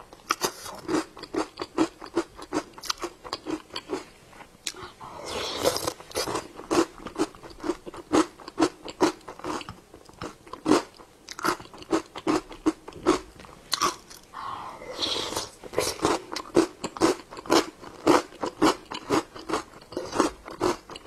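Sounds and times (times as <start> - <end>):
crunchy chewing: 0.2 - 14.3, 15.2 - 21.0.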